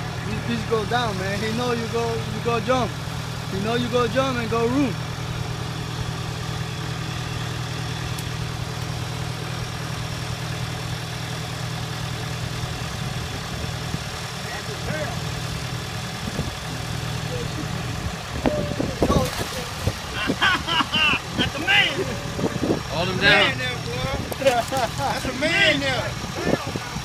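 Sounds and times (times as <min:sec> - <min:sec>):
excavator diesel engine idling: 0:00.0 - 0:27.0
raised voices: 0:16.6 - 0:27.0.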